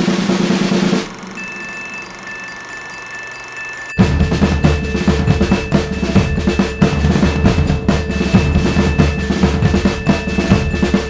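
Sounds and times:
thin high whine: 0:00.0 - 0:11.0.

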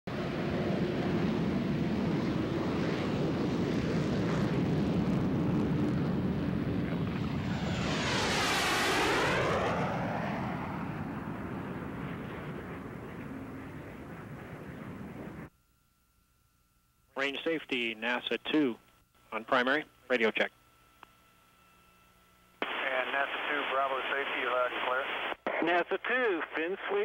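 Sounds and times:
jet whooshing overhead: 0:00.1 - 0:15.5
loud steady jet noise: 0:00.1 - 0:15.5, 0:22.6 - 0:25.9.

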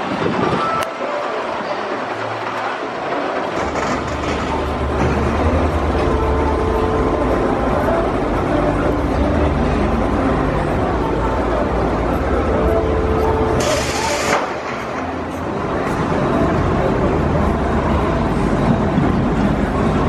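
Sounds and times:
outdoor noise: 0:00.0 - 0:20.0
roller coaster rumbling on track: 0:00.0 - 0:20.0.

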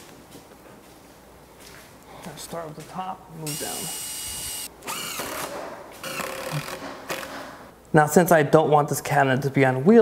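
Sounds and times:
cordless drill drilling into wood: 0:03.5 - 0:06.8.

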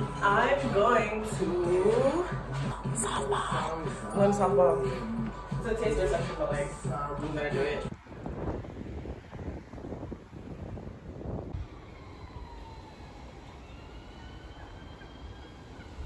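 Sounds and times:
wind buffeting microphone: 0:04.0 - 0:16.0
faint tones rising and falling: 0:07.8 - 0:16.0.

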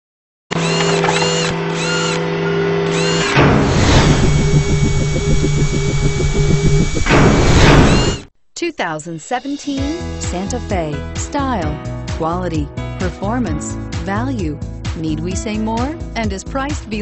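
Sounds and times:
fast mechanical whirring: 0:00.5 - 0:08.3
steady electronic hum: 0:00.7 - 0:08.2
whoosh: 0:03.3 - 0:08.2.

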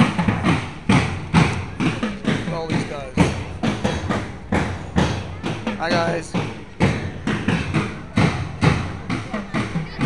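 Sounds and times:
drums beating march rhythm: 0:00.0 - 0:10.0.

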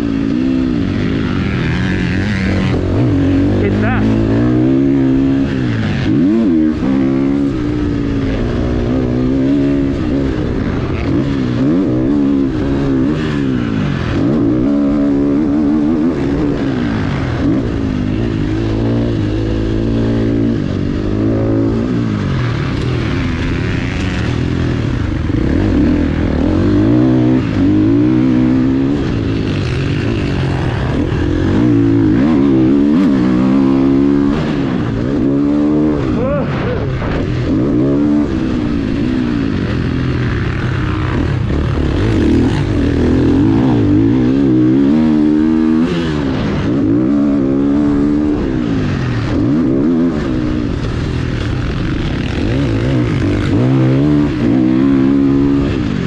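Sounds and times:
motocross bike engine revving: 0:00.0 - 0:56.0.

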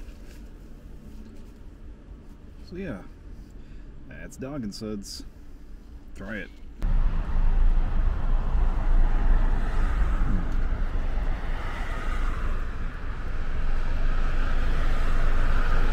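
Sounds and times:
car road and wind rumble: 0:06.7 - 0:15.9.

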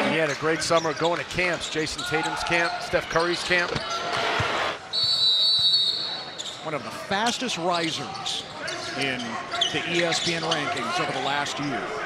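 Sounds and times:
arena crowd noise: 0:00.0 - 0:12.0
referee's whistle blast: 0:04.9 - 0:06.4.

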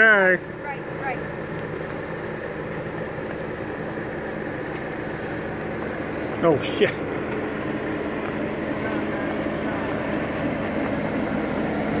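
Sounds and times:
car engine running at low revs: 0:00.0 - 0:12.0.

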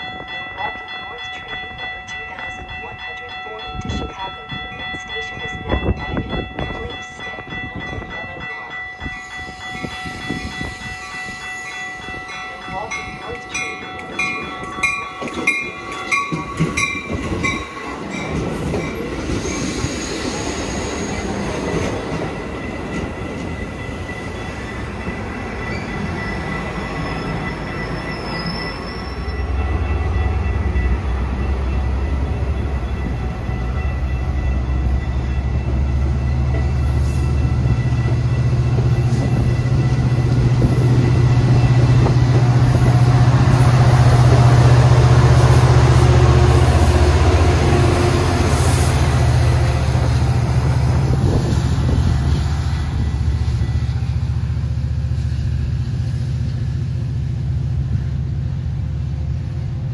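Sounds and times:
ringing crossing bells: 0:00.0 - 0:55.2
train cars rolling past: 0:00.0 - 0:59.9.

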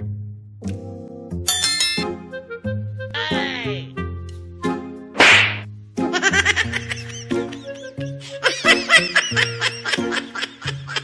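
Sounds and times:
whip-like swish: 0:05.2 - 0:05.7
cartoon giggling: 0:06.1 - 0:11.0.

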